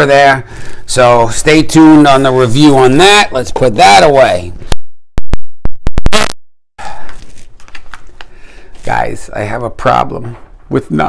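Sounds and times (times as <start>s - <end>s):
handling and rustling noises: 7.0s - 9.2s.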